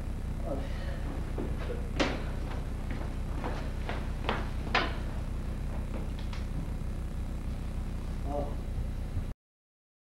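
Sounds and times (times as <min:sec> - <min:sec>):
low steady hum: 0:00.0 - 0:09.4.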